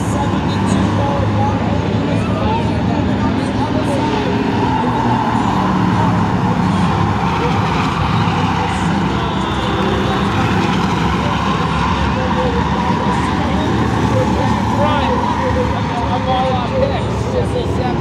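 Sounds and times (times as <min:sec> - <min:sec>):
race car engines and tyres: 0:00.0 - 0:18.0.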